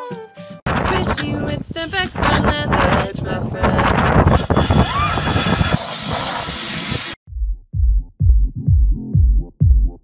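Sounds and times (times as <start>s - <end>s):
wind on microphone: 0.7s - 7.2s
zipline trolley whirring on cable: 4.4s - 7.2s.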